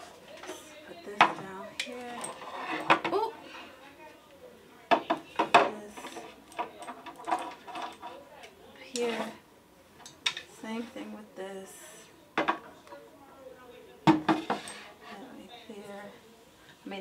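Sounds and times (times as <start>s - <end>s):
bottles and ceramics clinking: 0.0s - 3.3s.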